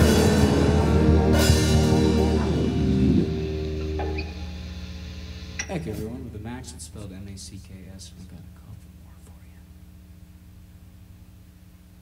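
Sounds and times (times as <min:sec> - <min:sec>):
low amplifier hum: 0:00.0 - 0:12.0.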